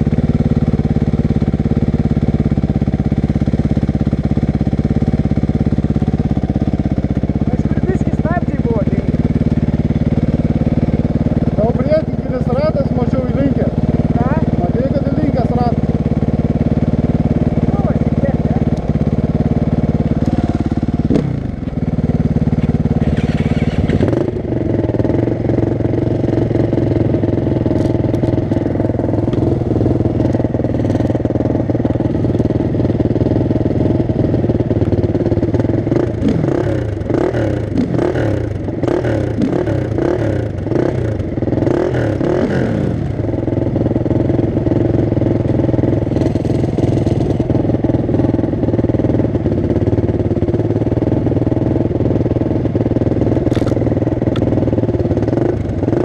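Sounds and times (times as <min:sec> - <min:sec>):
dirt bikes idling: 0:00.0 - 0:56.0.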